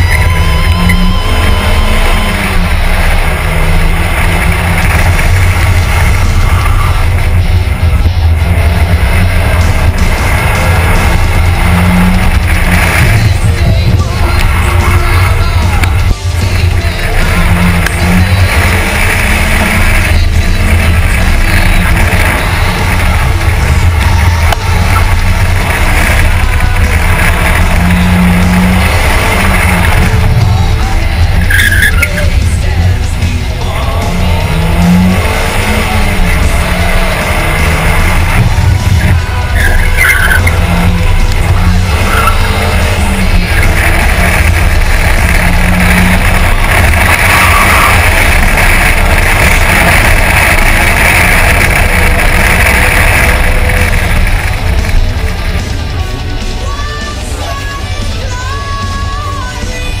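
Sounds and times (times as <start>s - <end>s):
tyre squeal: 0.0s - 7.5s, 8.6s - 32.8s, 33.7s - 55.4s
car engine running hard: 0.0s - 60.0s
road and tyre noise: 0.0s - 60.0s
rock music: 0.0s - 60.0s.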